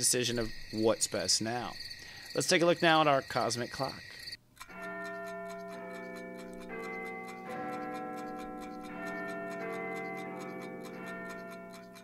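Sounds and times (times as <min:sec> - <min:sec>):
clock ticking: 0:00.0 - 0:12.0.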